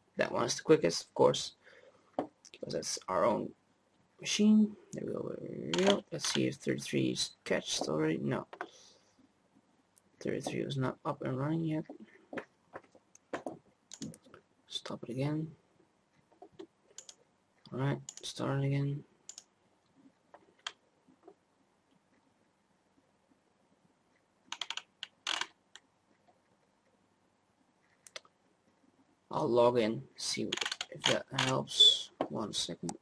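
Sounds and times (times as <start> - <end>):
computer mouse clicks: 5.7 - 6.4, 13.1 - 14.3, 16.4 - 17.2, 19.3 - 19.5, 24.5 - 26.3, 30.5 - 31.6
computer keyboard keystrokes: 24.5 - 25.5.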